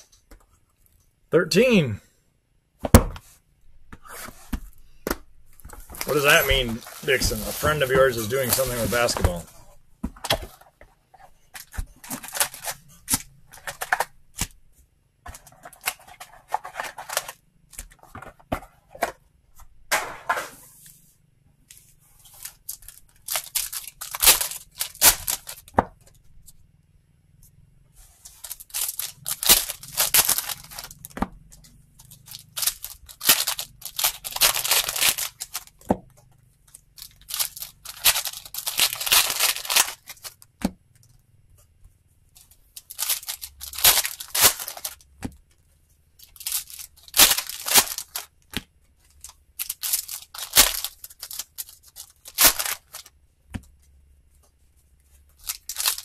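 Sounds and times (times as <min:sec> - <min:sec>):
foil wrappers tearing and crinkling: 0:05.6 - 0:09.5, 0:11.6 - 0:14.5, 0:22.2 - 0:25.8, 0:28.3 - 0:31.2, 0:32.0 - 0:35.8, 0:37.0 - 0:40.4, 0:42.4 - 0:45.0, 0:46.2 - 0:48.3, 0:49.1 - 0:53.1, 0:55.4 - 0:56.0.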